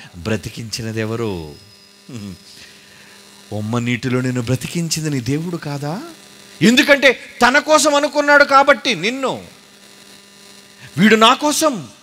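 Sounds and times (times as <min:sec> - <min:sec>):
low electrical hum: 0:00.0 - 0:12.0
man speaking: 0:00.2 - 0:02.6, 0:03.5 - 0:09.5, 0:10.8 - 0:12.0.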